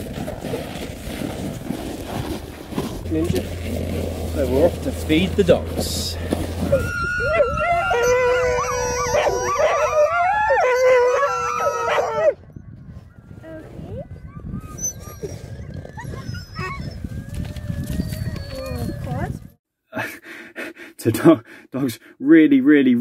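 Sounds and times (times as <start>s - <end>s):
sled dogs howling and yelping: 0.0s - 19.5s
dogs whining: 6.6s - 12.6s, 13.4s - 19.5s.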